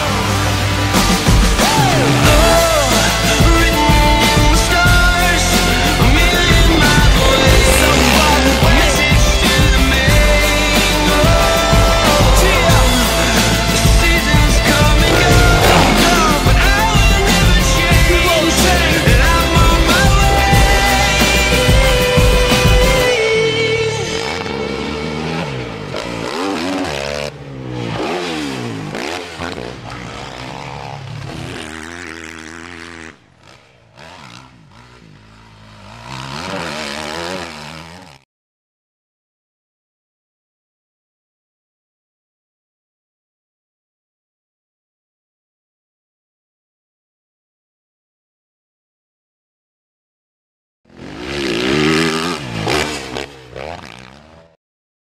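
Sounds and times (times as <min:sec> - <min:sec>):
motocross bike engine revving: 0:00.0 - 0:38.2, 0:50.9 - 0:54.6.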